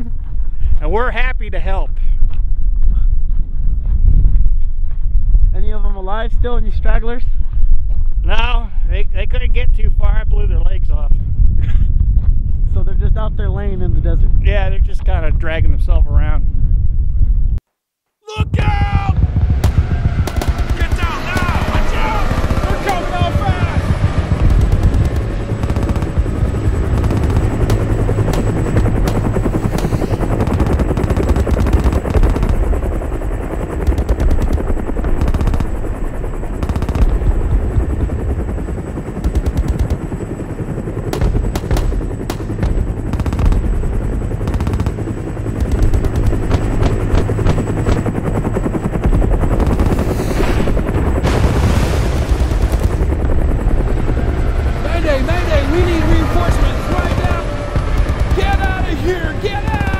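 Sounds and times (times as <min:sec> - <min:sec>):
low rumble: 0:01.8 - 0:17.6, 0:18.5 - 0:59.9
pistol shots: 0:19.6 - 0:23.1, 0:41.1 - 0:43.7, 0:45.6 - 0:48.1.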